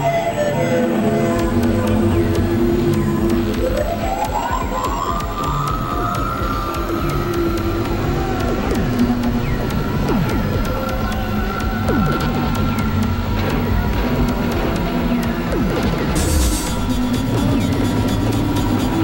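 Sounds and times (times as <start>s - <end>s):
low pulsing drone: 0.0s - 19.0s
siren-like synthesizer tone: 0.0s - 19.0s
electronic clicks and glitches: 1.1s - 19.0s.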